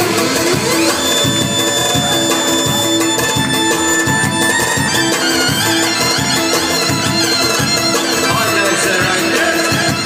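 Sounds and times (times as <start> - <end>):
live band music through speakers: 0.0 - 10.0.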